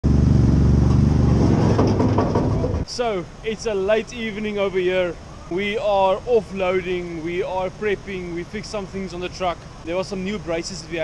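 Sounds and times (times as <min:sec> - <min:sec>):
vehicle engine running: 0:00.0 - 0:02.9.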